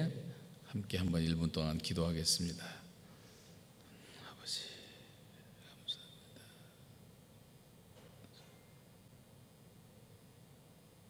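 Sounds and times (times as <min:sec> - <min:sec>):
person whispering a prayer: 0:04.2 - 0:06.7.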